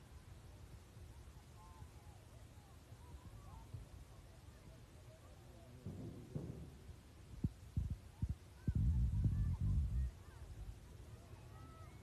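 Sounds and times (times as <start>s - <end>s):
low wind rumble on microphone: 5.8s - 11.2s.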